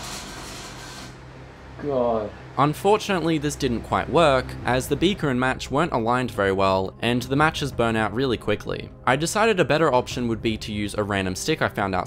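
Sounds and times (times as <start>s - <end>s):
microwave electrical hum: 0.0s - 5.2s.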